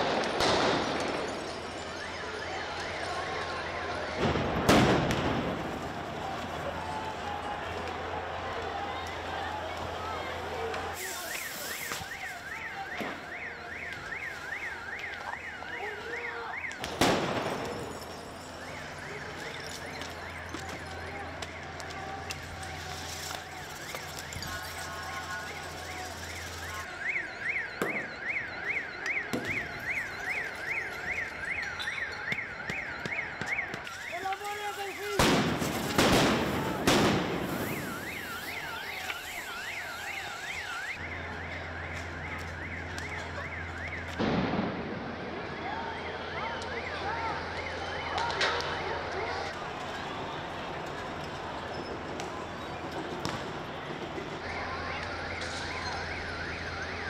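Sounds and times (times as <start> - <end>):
riot street noise: 0.0 - 57.0
electronic siren wailing: 0.1 - 57.0
sharp bangs: 32.3 - 40.7.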